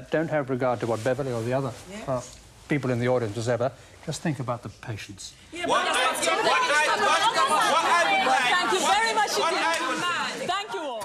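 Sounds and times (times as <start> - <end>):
overlapping voices: 5.6 - 11.0.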